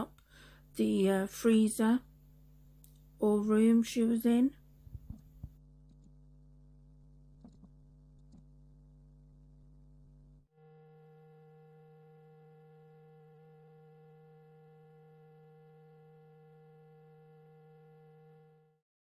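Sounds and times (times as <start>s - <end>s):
faint electrical hum: 0.0s - 18.7s.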